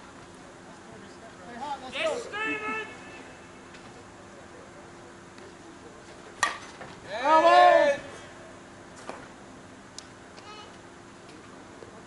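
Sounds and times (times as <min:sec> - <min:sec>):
person shouting: 0:01.9 - 0:03.4, 0:07.1 - 0:08.1.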